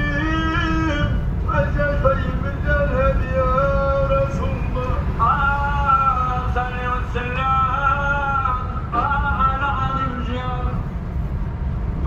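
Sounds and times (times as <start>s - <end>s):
man singing devotional chant: 0.0s - 10.8s
car road and engine rumble: 0.0s - 12.0s.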